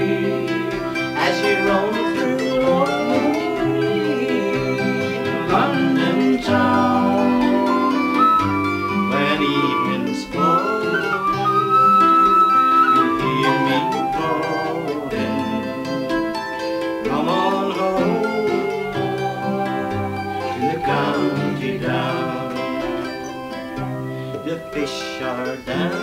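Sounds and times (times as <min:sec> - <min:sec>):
plucked string instrument: 0:00.0 - 0:26.0
strummed acoustic guitar: 0:00.0 - 0:26.0
tin whistle melody: 0:00.0 - 0:26.0.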